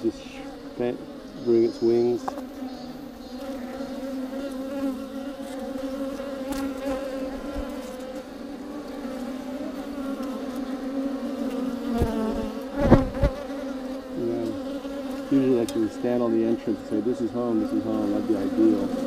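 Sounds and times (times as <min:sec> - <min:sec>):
honeybees buzzing: 0:00.0 - 0:19.0.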